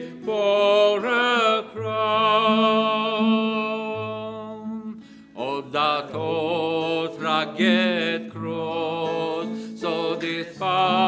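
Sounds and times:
acoustic guitar: 0.0 - 11.0
man singing: 0.0 - 11.0.

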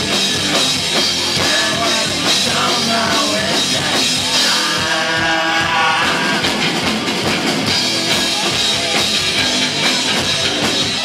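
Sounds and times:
bass guitar: 0.0 - 11.0
drum kit: 0.0 - 11.0
electric guitar: 0.0 - 11.0.

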